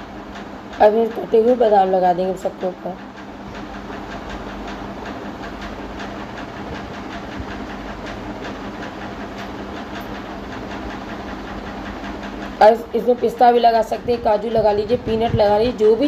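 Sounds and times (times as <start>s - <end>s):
mechanical hum and hiss: 0.0s - 16.0s.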